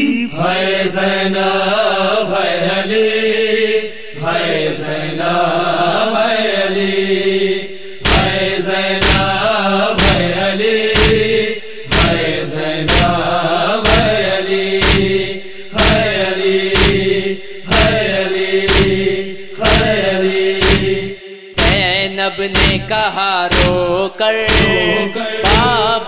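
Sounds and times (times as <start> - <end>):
men chanting a lament: 0.0 - 26.0
vocal drone: 0.0 - 26.0
chest-beating strikes: 8.0 - 25.8.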